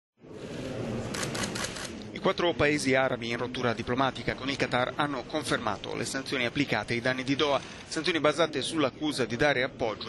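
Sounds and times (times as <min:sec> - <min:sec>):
room noise: 0:00.2 - 0:10.0
camera shutters clicking: 0:01.1 - 0:02.0.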